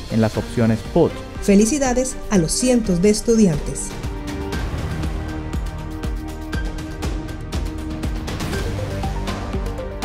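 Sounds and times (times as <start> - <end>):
music with a steady beat: 4.0 - 10.0.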